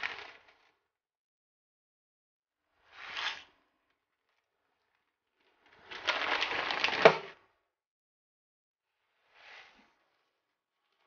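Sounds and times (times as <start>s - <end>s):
crinkling plastic noodle packet: 5.8s - 7.2s.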